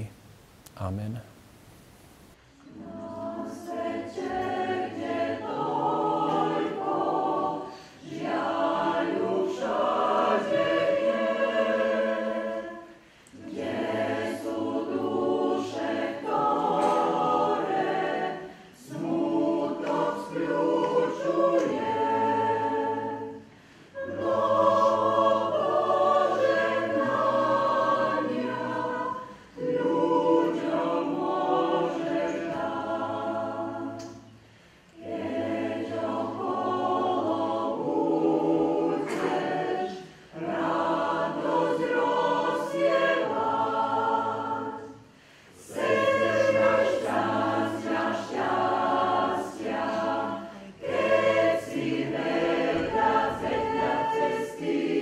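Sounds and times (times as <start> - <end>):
mixed choir singing: 2.6 - 55.0
singers breathing: 7.6 - 8.0, 12.9 - 13.4, 23.4 - 24.0, 34.3 - 35.0, 45.0 - 45.7.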